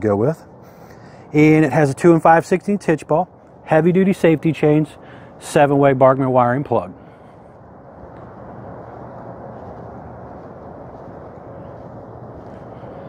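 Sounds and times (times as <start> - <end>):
outdoor low rush: 0.0 - 13.0.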